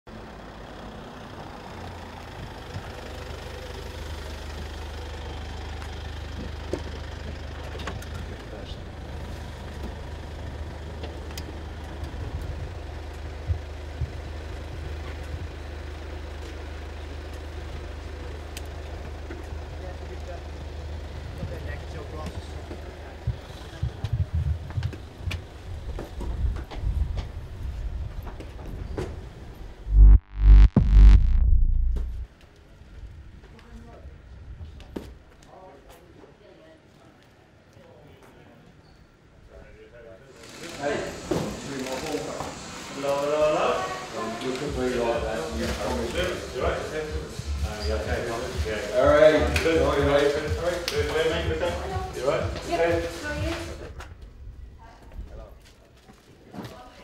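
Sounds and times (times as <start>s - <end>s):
van engine idling: 0.1s - 24.0s
low thumps: 29.9s - 32.3s.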